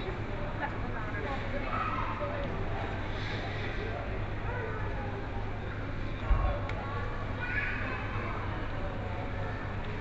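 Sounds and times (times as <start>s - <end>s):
low store hum: 0.0s - 10.0s.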